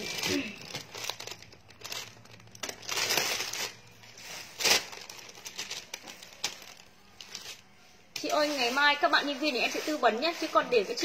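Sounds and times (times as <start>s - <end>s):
plastic bags crinkling: 0.0s - 11.0s.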